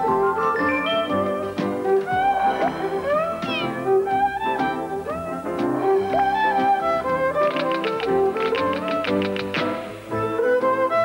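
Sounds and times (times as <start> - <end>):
light orchestral music: 0.0 - 11.0
cat meowing: 2.1 - 4.3.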